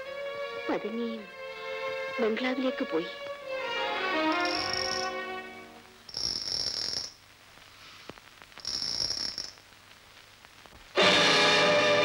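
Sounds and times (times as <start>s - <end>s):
insects trilling: 3.9s - 5.3s, 6.0s - 7.2s, 8.6s - 9.6s.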